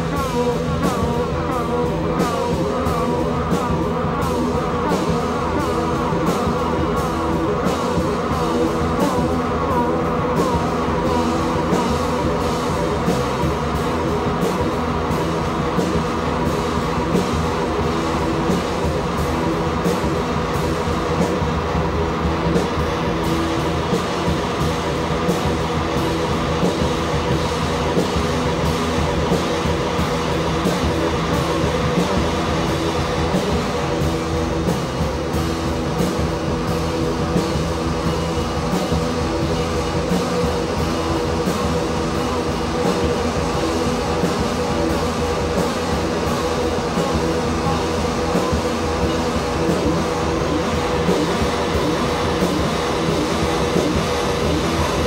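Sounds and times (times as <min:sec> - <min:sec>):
rock band playing live: 0:00.0 - 0:55.0.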